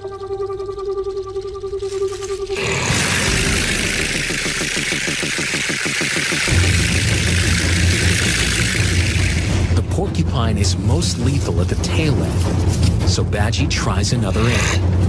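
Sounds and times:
quills rattling: 0.0 - 10.0
documentary music with low drone: 0.0 - 15.0.

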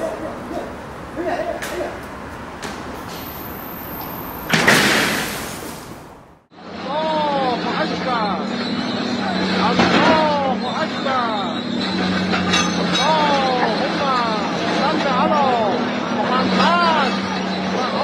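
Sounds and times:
loud crash: 4.4 - 6.1
bulldozer engine running: 6.1 - 18.0
high pitch-bending squeals: 6.6 - 18.0.

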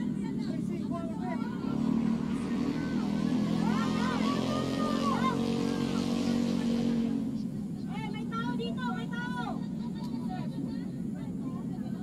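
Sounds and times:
distant voices calling out: 0.0 - 12.0
low motor hum: 0.0 - 12.0.

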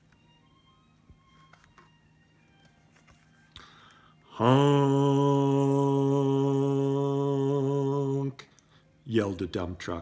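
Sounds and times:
book page turning: 1.2 - 3.6.

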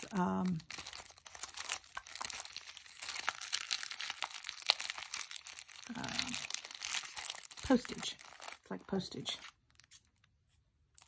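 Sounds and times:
plastic packaging crinkling: 0.0 - 11.0
person saying uh: 5.9 - 6.5.

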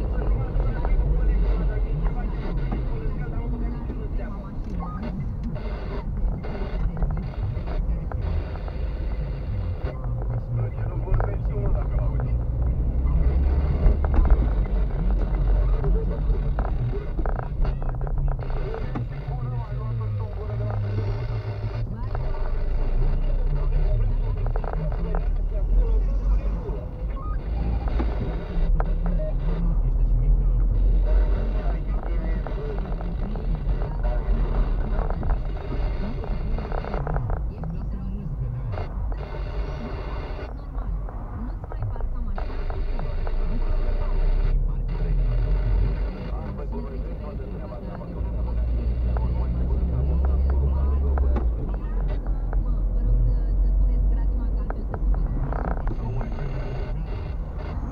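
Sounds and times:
car engine and road rumble: 0.0 - 57.9
indistinct voices or radio: 0.0 - 57.9.

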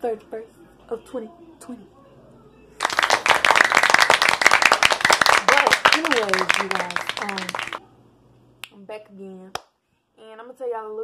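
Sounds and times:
crowd cheering: 2.8 - 7.8
crowd clapping: 2.8 - 7.8.

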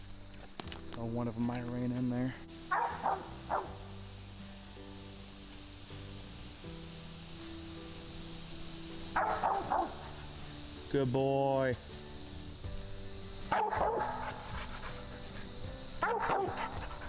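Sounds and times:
music with slow held chords: 0.0 - 17.0
dog barking: 2.7 - 3.8, 9.2 - 10.2, 13.5 - 15.0, 16.0 - 17.0.

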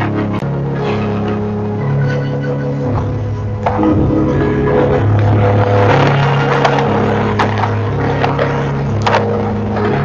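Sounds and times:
low sustained drama score: 0.0 - 10.0.

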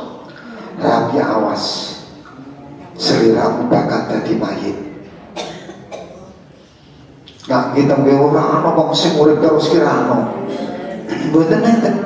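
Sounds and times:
person coughing: 5.4 - 6.4.

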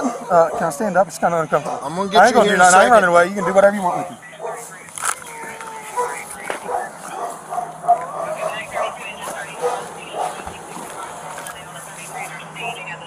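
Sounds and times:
dog barking: 0.0 - 4.7, 5.9 - 11.3, 12.6 - 12.9
indistinct voices: 0.0 - 13.0.

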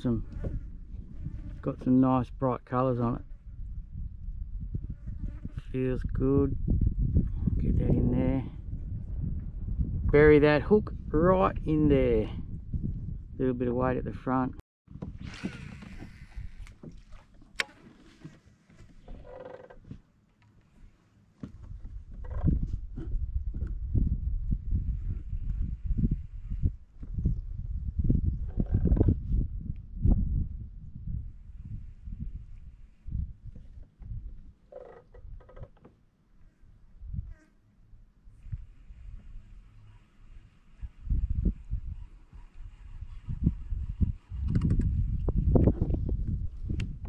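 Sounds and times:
handling rumble on plastic kayak: 14.9 - 29.3.

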